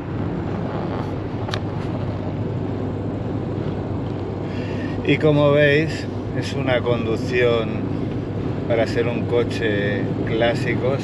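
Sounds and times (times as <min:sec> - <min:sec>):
car interior road drone: 0:00.0 - 0:11.0.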